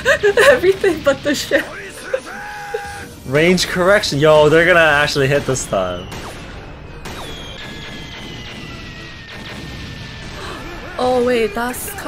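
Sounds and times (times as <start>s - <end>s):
dramatic background music: 0.0s - 12.0s.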